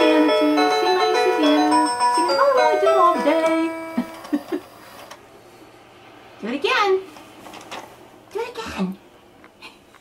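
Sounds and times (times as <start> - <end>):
baby toy sung tune: 0.0 - 4.0.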